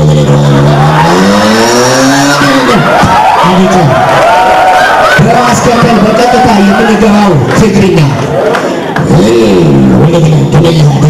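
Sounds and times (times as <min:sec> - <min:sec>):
man imitating race car engine: 0:00.0 - 0:04.2, 0:05.2 - 0:08.2, 0:08.8 - 0:11.0
vocal tyre squeal screech: 0:00.0 - 0:05.2.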